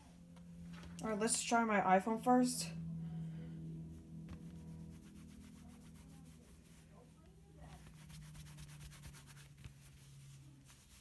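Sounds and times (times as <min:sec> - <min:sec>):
low steady hum: 0:00.0 - 0:11.0
cloth rubbing over phone: 0:04.0 - 0:11.0.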